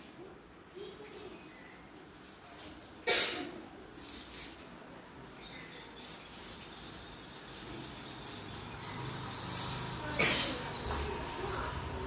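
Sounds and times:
brief rustle: 0:03.9 - 0:04.8.

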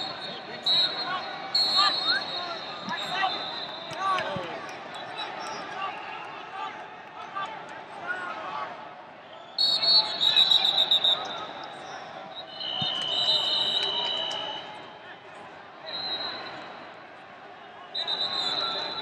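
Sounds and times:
shrill whistle blasts: 0:00.0 - 0:04.1, 0:09.4 - 0:11.6, 0:12.3 - 0:14.8, 0:15.9 - 0:16.7, 0:18.0 - 0:19.0.

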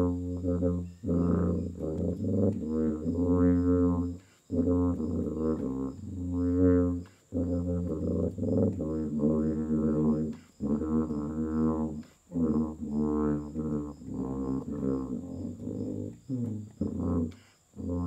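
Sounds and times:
tuba playing slow melody: 0:00.0 - 0:18.0.

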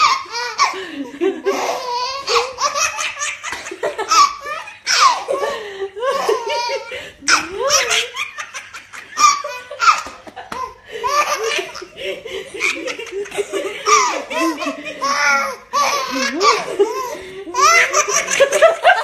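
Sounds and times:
baby laughing: 0:00.0 - 0:19.0.

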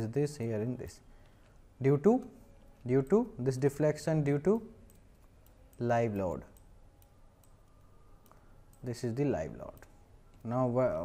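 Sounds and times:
computer mouse click: 0:04.3 - 0:09.0, 0:09.6 - 0:10.7.

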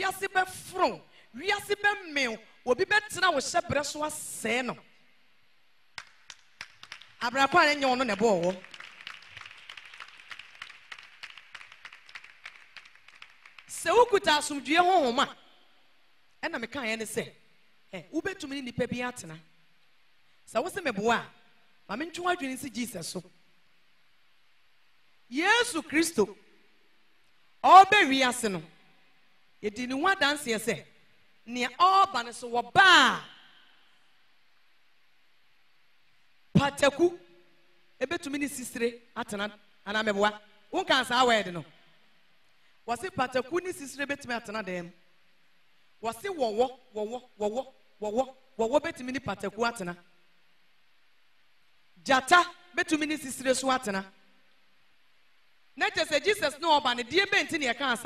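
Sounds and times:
person speaking: 0:07.2 - 0:08.8, 0:13.7 - 0:15.4, 0:31.5 - 0:33.3.

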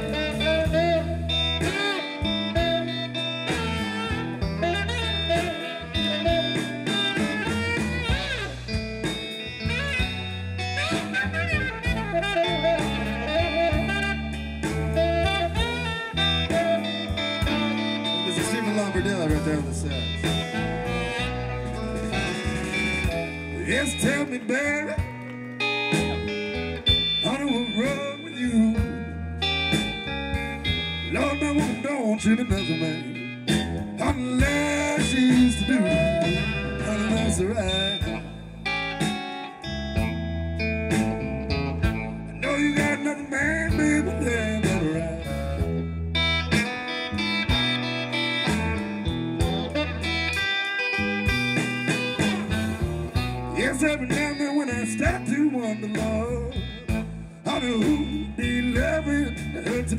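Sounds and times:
saxophone: 0:00.0 - 0:54.4
bass: 0:00.0 - 0:59.9
drums: 0:00.0 - 0:59.9
electric guitar: 0:00.0 - 0:59.9.

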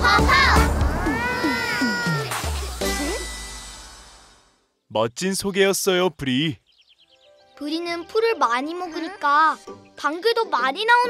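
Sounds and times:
cries sliding down in pitch: 0:00.3 - 0:02.4.

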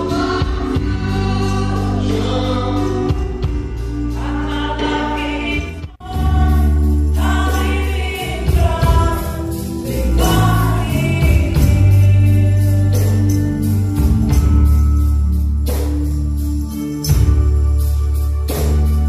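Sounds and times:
band with strong bass: 0:00.0 - 0:19.0
gospel singers: 0:00.0 - 0:19.0.

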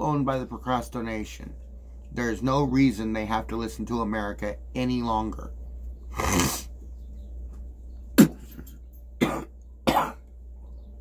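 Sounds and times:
man coughing: 0:08.2 - 0:10.2.

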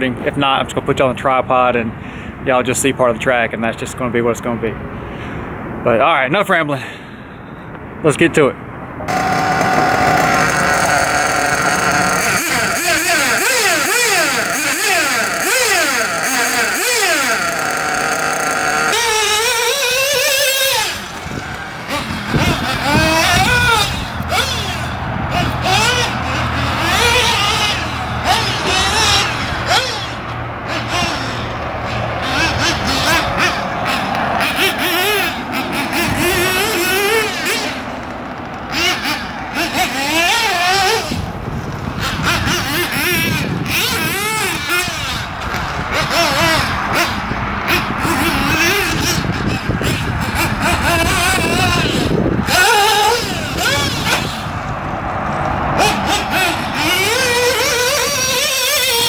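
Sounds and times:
model buggy engine revving: 0:09.0 - 0:59.0.

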